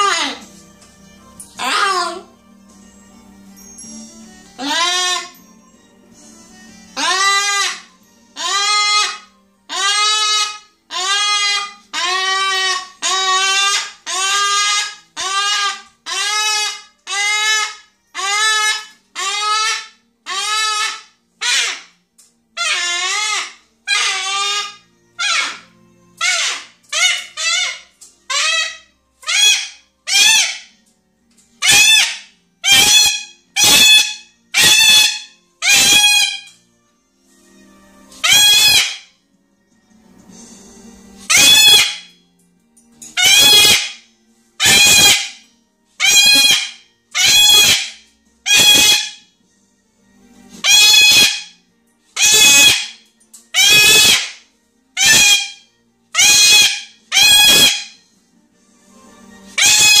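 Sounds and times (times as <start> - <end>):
cockatoo screaming: 0.0 - 0.5, 1.6 - 2.3, 4.6 - 5.4, 7.0 - 22.0, 22.6 - 30.8, 31.6 - 36.5, 38.2 - 39.1, 41.3 - 42.1, 43.2 - 44.0, 44.6 - 45.4, 46.0 - 49.3, 50.6 - 51.6, 52.2 - 54.4, 55.0 - 58.0, 59.5 - 60.0.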